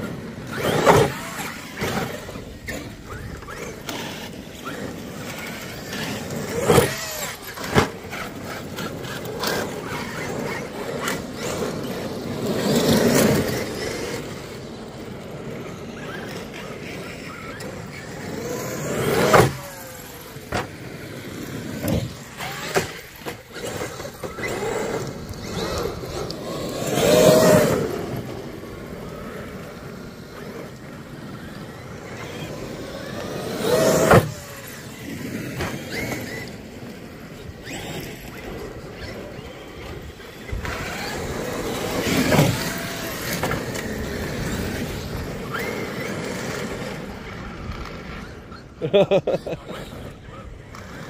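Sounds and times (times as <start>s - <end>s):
electric motors whining: 0.0s - 51.0s.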